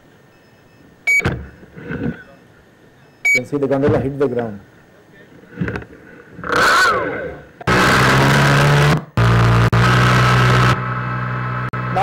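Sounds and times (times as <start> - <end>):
propeller motors running: 5.4 - 12.0.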